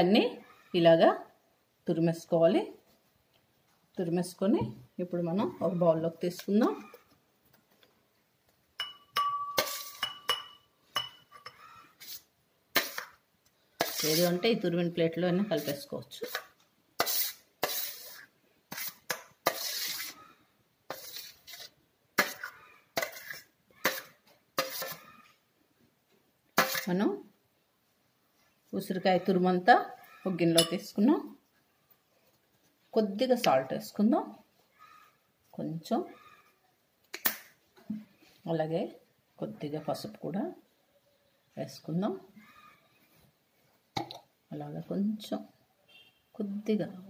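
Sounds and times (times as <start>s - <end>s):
woman speaking: 0.0s - 1.3s, 1.9s - 2.8s, 4.0s - 7.0s, 14.0s - 16.4s, 26.8s - 27.3s, 28.7s - 31.4s, 33.0s - 34.4s, 35.6s - 36.2s, 37.9s - 40.6s, 41.6s - 42.3s, 44.5s - 45.5s, 46.4s - 47.0s
metal spoon clinking on dishes: 8.8s - 11.6s, 30.5s - 30.9s
metal spoon scraping glass bowl: 8.8s - 13.2s, 13.8s - 14.6s, 15.3s - 20.2s, 20.9s - 25.2s, 26.6s - 27.0s, 30.3s - 30.9s.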